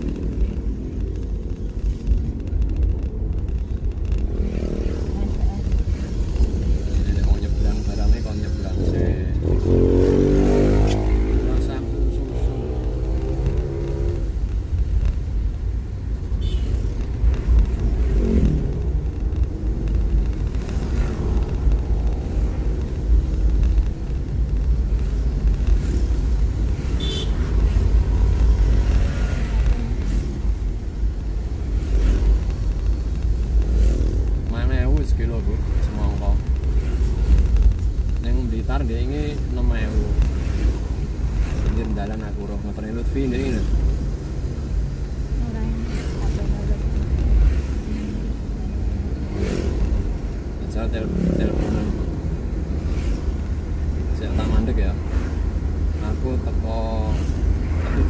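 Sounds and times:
car engine and tyres rumbling: 0:00.0 - 0:58.0.

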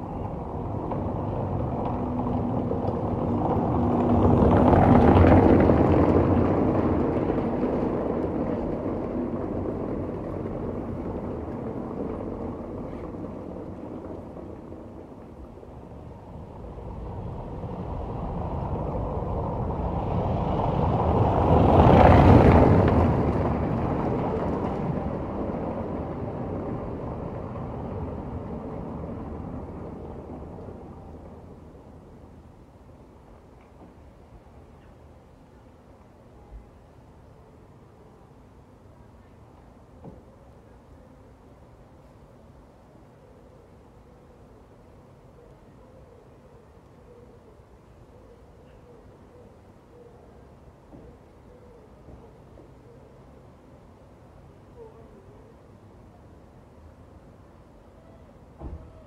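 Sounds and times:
vehicles passing by: 0:00.0 - 0:59.0.

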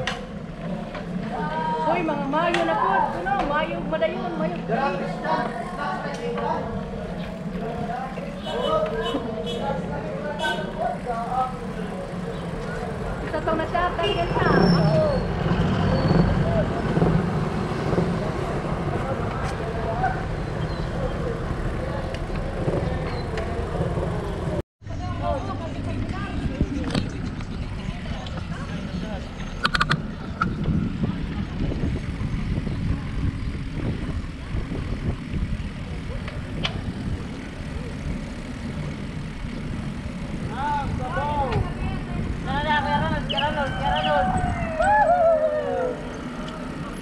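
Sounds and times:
road rumble: 0:00.0 - 0:47.0
wind: 0:00.0 - 0:47.0
riders calling out: 0:00.2 - 0:26.8, 0:33.6 - 0:47.0.

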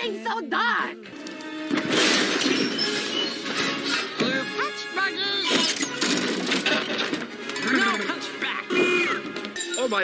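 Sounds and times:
animated film music: 0:00.0 - 0:10.0.

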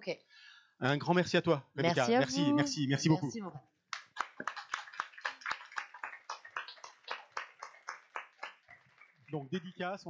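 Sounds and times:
small audience clapping: 0:03.9 - 0:10.0.

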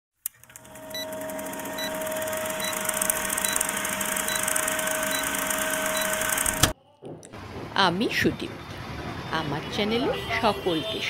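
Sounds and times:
film projector clatter: 0:00.2 - 0:06.7
steady hum: 0:00.5 - 0:06.8
short high beeps: 0:00.9 - 0:06.6.

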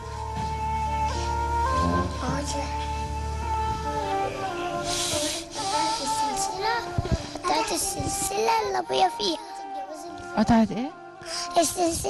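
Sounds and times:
background music: 0:00.0 - 0:12.0
girl speaking: 0:05.7 - 0:10.2, 0:11.6 - 0:12.0
microphone thumps: 0:06.9 - 0:08.3.

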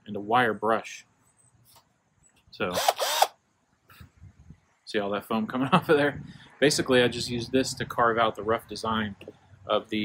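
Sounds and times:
cordless drill spinning: 0:02.7 - 0:03.4.

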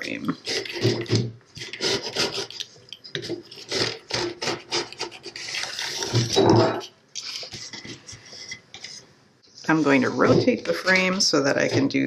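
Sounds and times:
metal roller rasping on wood: 0:00.4 - 0:02.6.

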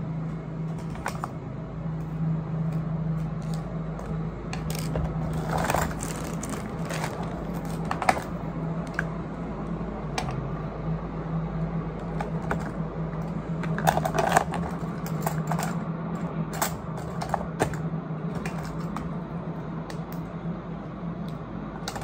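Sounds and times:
steady low hum: 0:00.0 - 0:22.0
small plastic items clattering: 0:03.4 - 0:08.3, 0:13.6 - 0:15.8.

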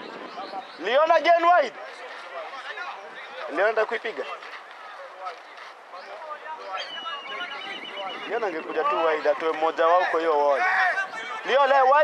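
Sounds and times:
voices on sports pitch: 0:00.0 - 0:12.0
referee's whistle trill: 0:06.8 - 0:09.1.

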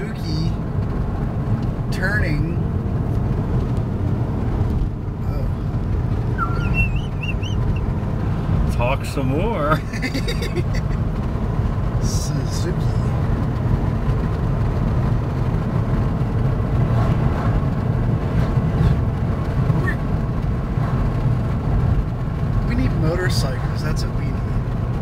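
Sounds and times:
car engine and tyre rumble: 0:00.0 - 0:25.0.

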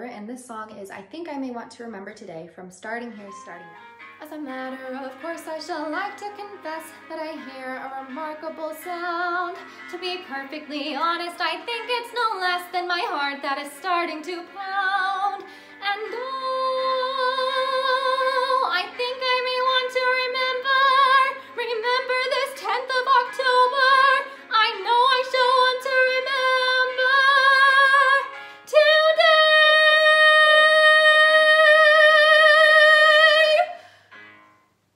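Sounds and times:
woman singing with vibrato: 0:04.2 - 0:33.9.

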